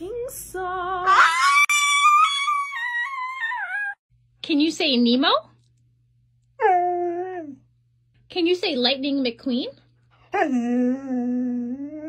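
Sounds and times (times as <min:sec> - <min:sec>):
small dog howling: 0:01.1 - 0:04.0.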